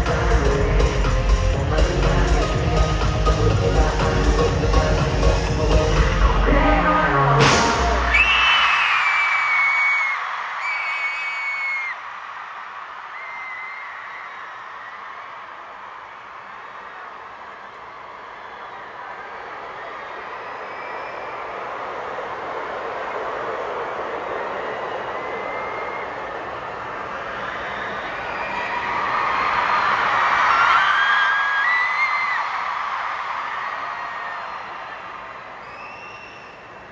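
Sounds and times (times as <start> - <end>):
crowd cheering and screaming: 2.5 - 36.9
single high screams: 8.1 - 12.0.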